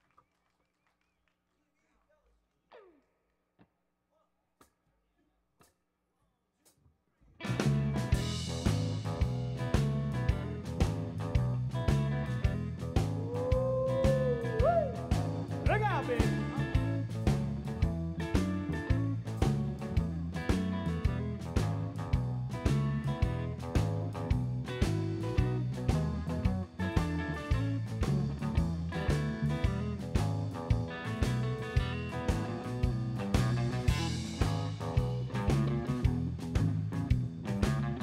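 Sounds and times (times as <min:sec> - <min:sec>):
drums: 0:07.4 - 0:38.0
electric bass: 0:07.4 - 0:38.0
electric guitar: 0:07.4 - 0:38.0.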